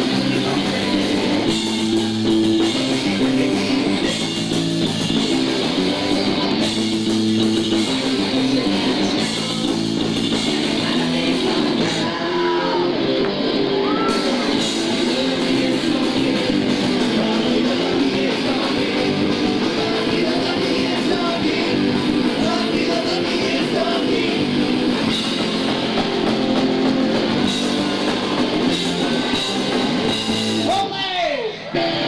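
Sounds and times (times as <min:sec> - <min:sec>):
bass guitar: 0:00.0 - 0:32.0
drums: 0:00.0 - 0:32.0
electric guitar: 0:00.0 - 0:32.0.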